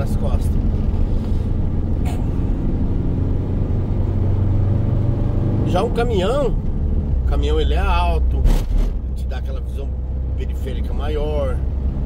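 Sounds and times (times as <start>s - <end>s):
road rumble: 0.0s - 12.0s
van engine droning: 0.0s - 12.0s.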